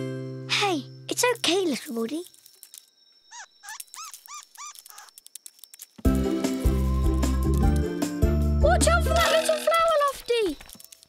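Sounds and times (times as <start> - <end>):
squeaky cartoon voice chirps: 3.3 - 5.2.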